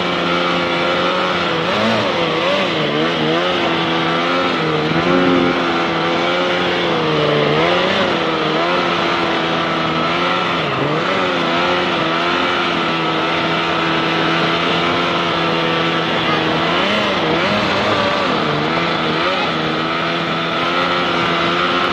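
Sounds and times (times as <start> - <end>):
boat engine running: 0.0 - 21.9.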